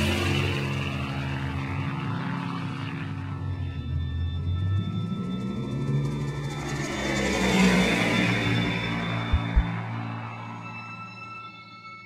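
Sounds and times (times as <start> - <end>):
low drone soundtrack music: 0.0 - 12.0.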